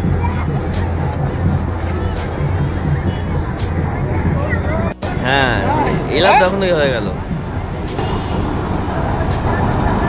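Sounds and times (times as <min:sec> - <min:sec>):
people talking: 0:00.0 - 0:07.3
vehicle engine rumble: 0:00.0 - 0:10.0.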